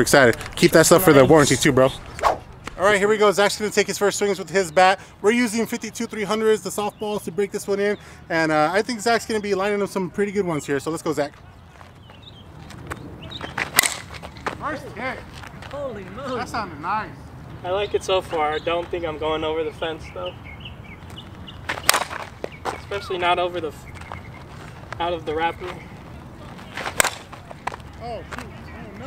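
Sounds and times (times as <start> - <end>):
softball bat hitting ball: 13.4 - 14.6, 21.7 - 22.8, 26.6 - 27.8.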